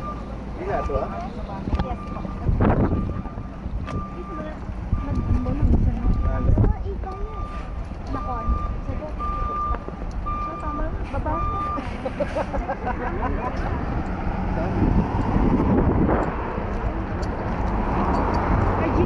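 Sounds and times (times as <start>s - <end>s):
reversing alarm beeping: 0.0s - 12.4s
bus engine running: 0.0s - 19.0s.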